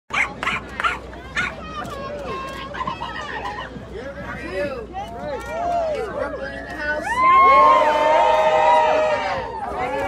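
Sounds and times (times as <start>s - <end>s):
dog barking: 0.1s - 1.6s
murmur of outdoor crowd: 0.1s - 10.0s.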